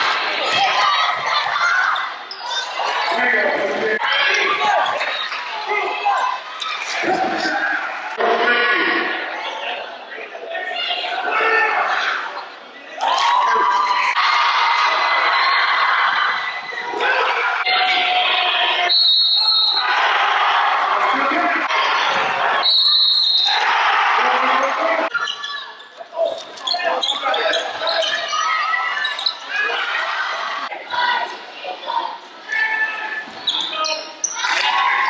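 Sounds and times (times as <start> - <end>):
crowd chatter and shouting: 0.0 - 35.0
referee whistle blasts: 18.9 - 19.9, 22.6 - 23.6.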